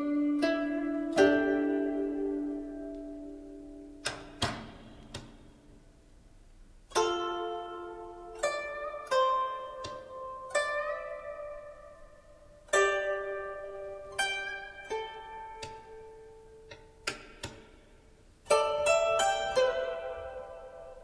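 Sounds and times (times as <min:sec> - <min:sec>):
plucked zither notes: 0:00.0 - 0:06.1, 0:06.8 - 0:21.0.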